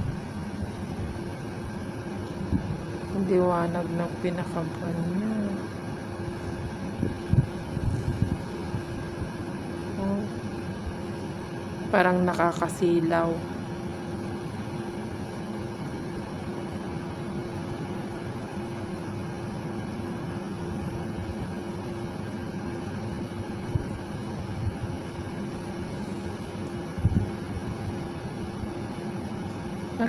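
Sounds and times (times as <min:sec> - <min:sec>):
low machine hum with tone: 0:00.0 - 0:30.0.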